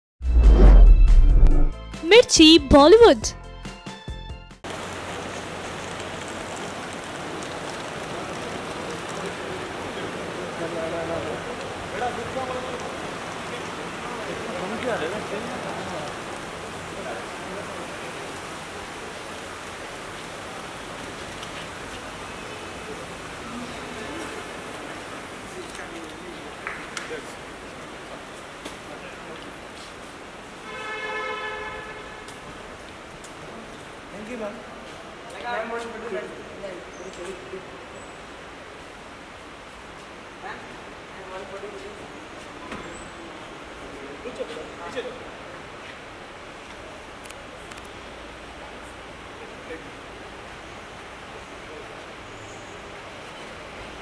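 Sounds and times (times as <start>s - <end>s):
music jingle: 0.3s - 3.5s
airport terminal hubbub: 2.1s - 3.3s
parking garage background noise: 21.7s - 54.0s
car horn: 30.7s - 32.3s.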